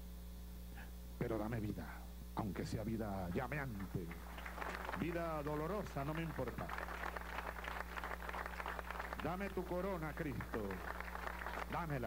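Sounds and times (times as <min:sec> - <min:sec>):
low electrical hum: 0:00.0 - 0:12.0
audience applauding: 0:03.7 - 0:12.0.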